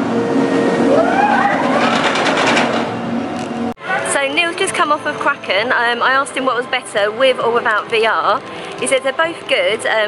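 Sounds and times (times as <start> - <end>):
roller coaster train roaring: 0.0 - 4.9.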